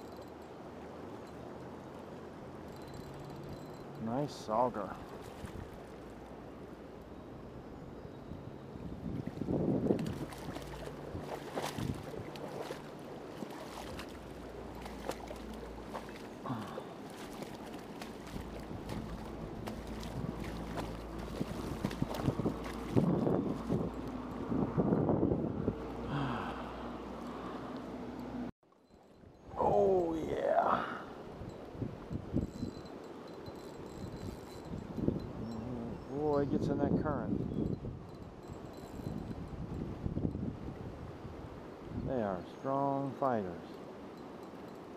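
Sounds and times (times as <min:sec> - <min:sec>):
river current flowing: 0:00.0 - 0:36.4, 0:37.9 - 0:44.9
water splashing: 0:04.8 - 0:06.4, 0:09.1 - 0:24.3
wind on microphone: 0:08.3 - 0:27.2, 0:29.2 - 0:42.2
river rushing over shallows: 0:09.0 - 0:24.8.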